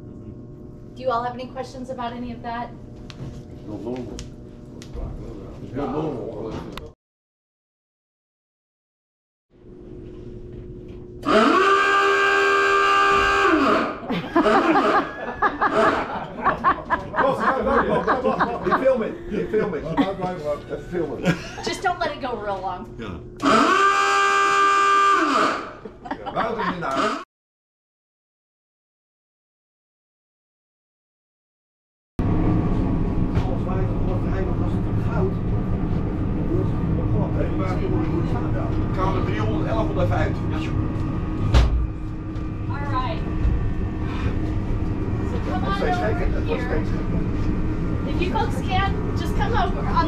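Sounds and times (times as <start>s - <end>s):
steady low hum: 0.0s - 7.0s, 9.6s - 27.2s, 32.2s - 50.0s
alarm horn steady tone: 11.1s - 16.3s, 22.8s - 25.8s, 26.8s - 27.3s.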